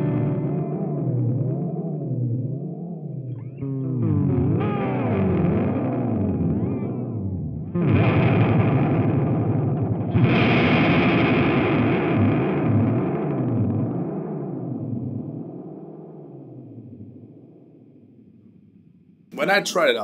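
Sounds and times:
electric guitar chords with modulation: 0.0 - 18.3.

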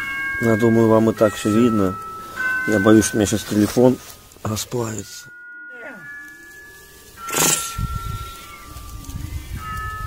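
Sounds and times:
chime-like background music: 0.0 - 10.0.

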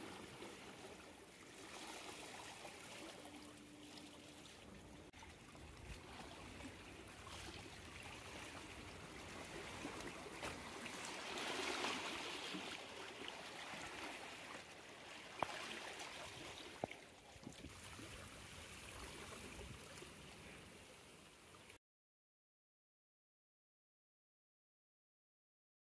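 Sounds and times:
seawater washing around rocks: 0.0 - 20.7.

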